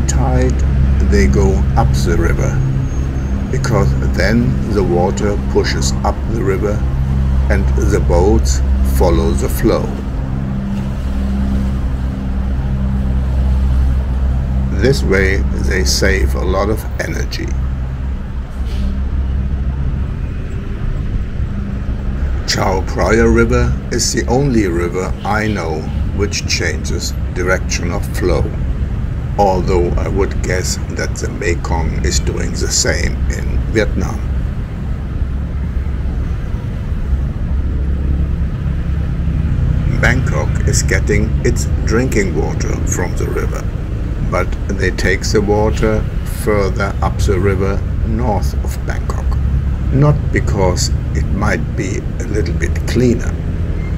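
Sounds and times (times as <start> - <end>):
low engine drone: 0.0 - 53.9
road traffic rumble: 0.0 - 53.9
rushing noise: 0.0 - 53.9.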